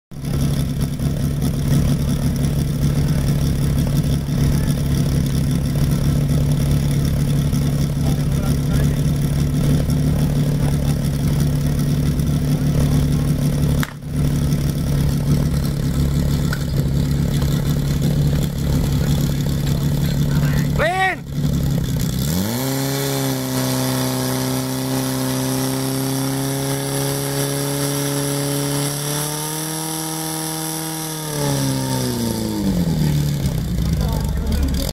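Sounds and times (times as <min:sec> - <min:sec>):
fire pump engine running: 0:00.1 - 0:34.9.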